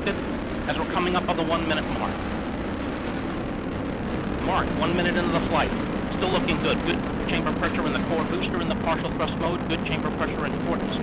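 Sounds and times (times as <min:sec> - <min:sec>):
rocket engines rumbling: 0:00.0 - 0:11.0.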